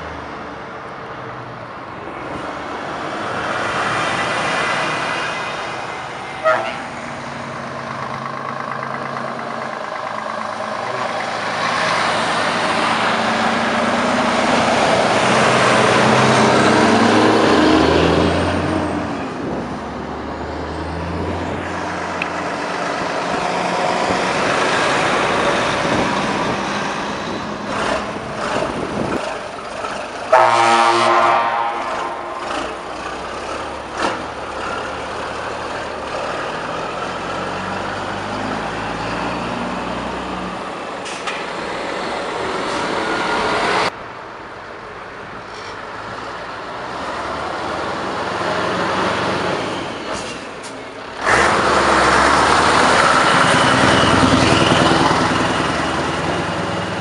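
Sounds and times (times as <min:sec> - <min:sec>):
heavy trucks driving past: 0:00.0 - 0:57.0
truck horn blast: 0:06.4 - 0:07.0, 0:30.3 - 0:32.8.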